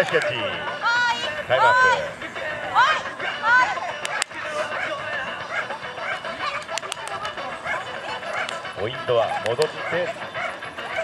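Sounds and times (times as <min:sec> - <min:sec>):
spectators chattering: 0:00.0 - 0:11.0
dogs barking and yipping: 0:02.8 - 0:11.0
sharp clicks: 0:06.6 - 0:07.4.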